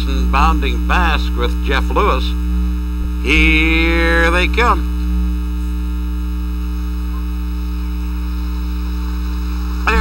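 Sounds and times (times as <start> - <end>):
electrical mains hum: 0.0 - 10.0
faint tape hiss: 0.0 - 10.0.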